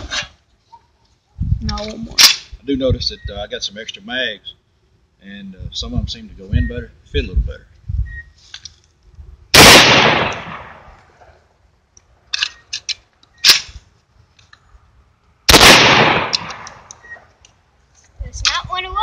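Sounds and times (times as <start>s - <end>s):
shotgun shots echoing: 9.6s - 11.0s, 15.5s - 16.9s
sharp clicks: 15.5s - 17.6s.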